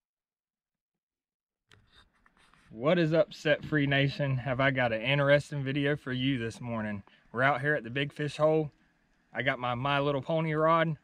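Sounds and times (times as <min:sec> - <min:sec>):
man speaking: 0:02.7 - 0:08.7, 0:09.4 - 0:11.0.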